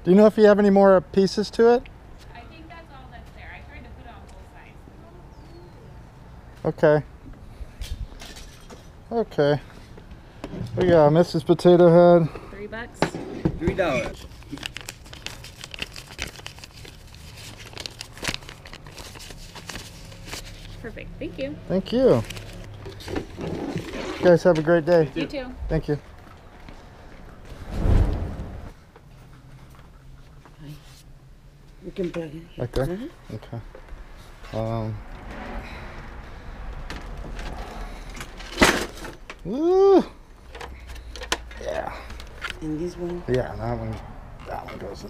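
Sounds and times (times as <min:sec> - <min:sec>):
paper bills rustling and crinkling: 0:13.9 - 0:20.9, 0:22.0 - 0:24.5.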